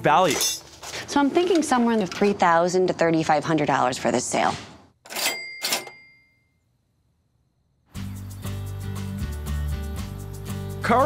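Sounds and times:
background music: 7.9s - 11.0s.

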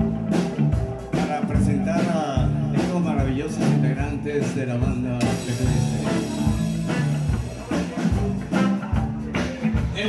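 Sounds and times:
bass guitar notes: 0.0s - 10.0s
drum kit hits: 0.0s - 10.0s
electric guitar: 0.0s - 10.0s.

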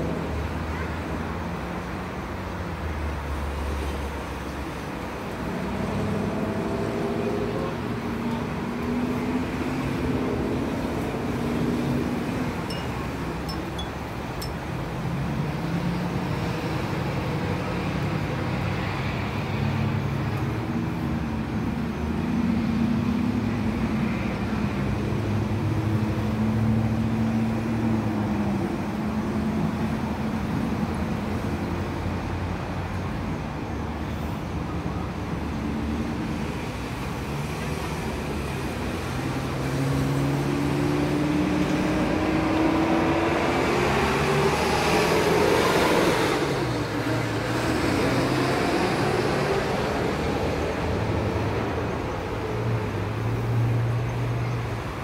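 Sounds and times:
vehicles driving by: 0.0s - 55.0s
vehicle engine accelerating: 4.7s - 12.7s, 38.4s - 52.2s.

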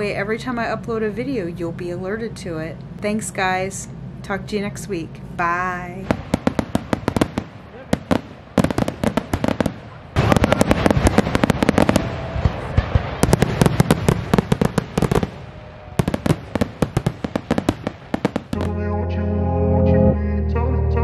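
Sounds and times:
fireworks bangs and crackling: 6.0s - 18.8s.

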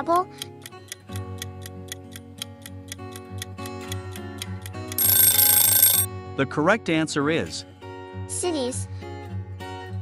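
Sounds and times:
fast clock ticking: 0.0s - 6.1s
soft background music: 0.0s - 10.0s.

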